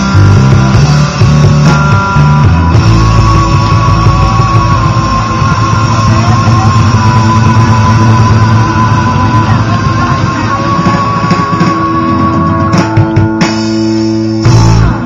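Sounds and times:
bass guitar notes: 0:00.0 - 0:15.0
live rock band playing: 0:00.0 - 0:15.0.

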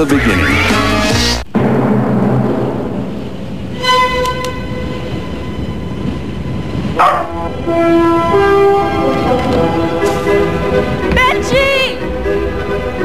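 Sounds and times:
steady rushing noise: 0:01.0 - 0:13.0
held musical notes: 0:03.6 - 0:13.0
held horn-like tone: 0:03.7 - 0:11.1.

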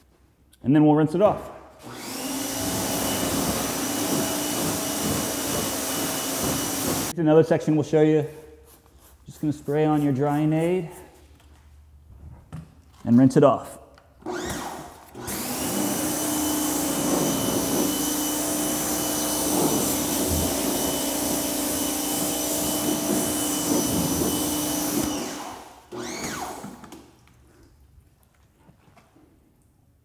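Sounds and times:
pressure washer spraying water: 0:02.0 - 0:07.1, 0:15.3 - 0:25.4.

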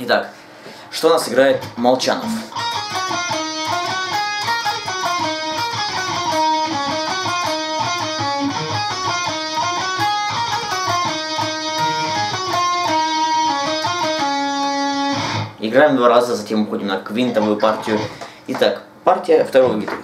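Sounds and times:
electric guitar lead melody: 0:01.6 - 0:15.6, 0:17.3 - 0:18.2.

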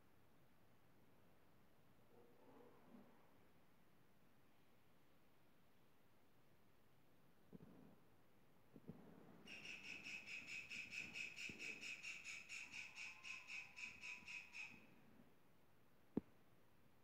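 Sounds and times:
faint high-pitched chirping: 0:09.5 - 0:14.9.

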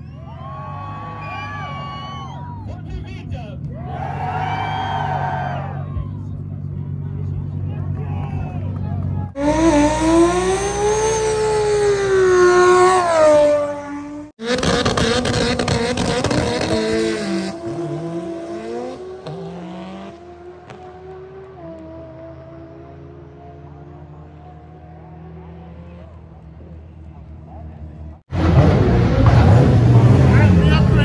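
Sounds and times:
tire squeal: 0:00.0 - 0:02.9, 0:03.7 - 0:06.3
car engine revving high: 0:09.2 - 0:26.2, 0:28.3 - 0:31.0
car launching hard: 0:28.3 - 0:31.0.

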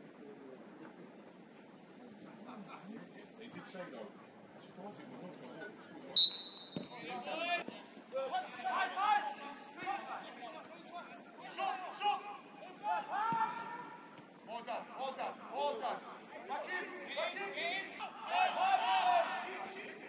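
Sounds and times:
footballers shouting: 0:07.1 - 0:20.0.

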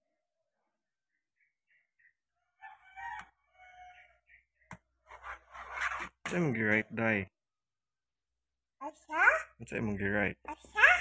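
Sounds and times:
rooster crowing: 0:02.4 - 0:04.2.

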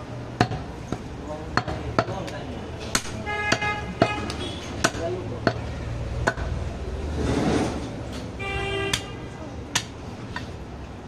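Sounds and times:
cleaver chopping meat on wood: 0:00.4 - 0:06.6.

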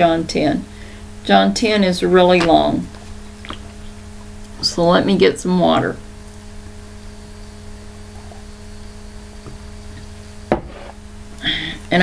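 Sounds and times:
low electrical hum: 0:00.0 - 0:12.0
mug knocking on desk: 0:10.5 - 0:10.9.

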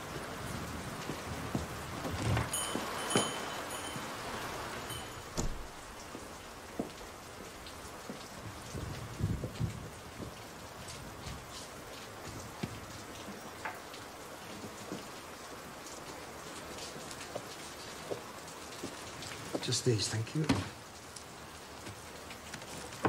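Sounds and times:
steady rain falling: 0:00.0 - 0:23.0.

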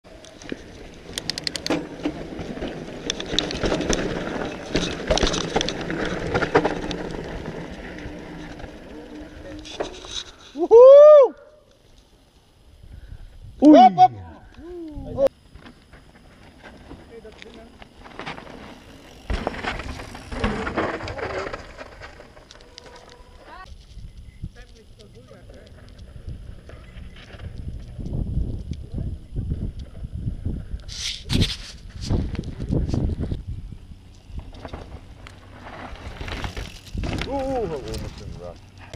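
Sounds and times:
distant voices calling out: 0:13.6 - 0:15.3
wind buffeting microphone: 0:25.7 - 0:34.5.

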